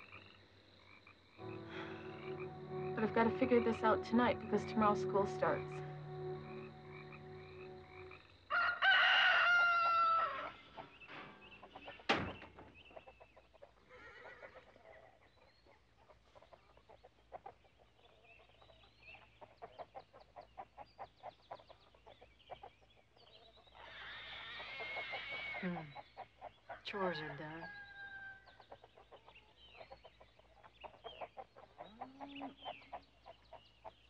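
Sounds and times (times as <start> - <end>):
frogs trilling: 0.0 - 11.0, 14.0 - 34.0
rooster crowing: 8.5 - 10.6, 27.1 - 28.5
hens clucking: 9.4 - 13.9, 28.4 - 34.0.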